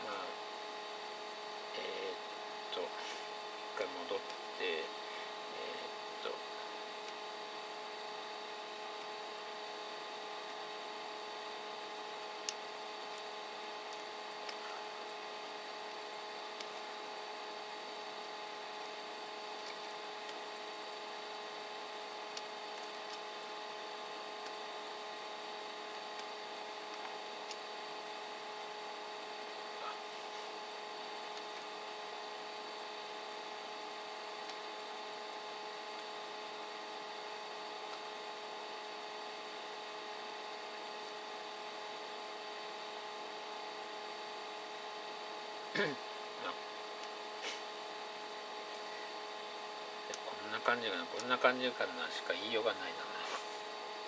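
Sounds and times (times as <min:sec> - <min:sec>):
constant whining tones: 0:00.0 - 0:54.0
equipment room hum: 0:00.0 - 0:54.0.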